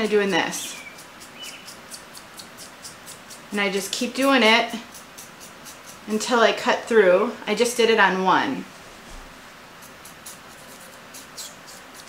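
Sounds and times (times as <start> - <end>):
razor comb scratching wig hair: 0.0 - 6.2, 9.8 - 12.0.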